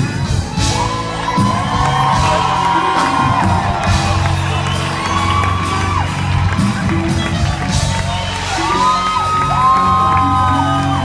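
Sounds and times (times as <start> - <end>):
crowd whooping and cheering: 0.0 - 11.0
live band music: 0.0 - 11.0.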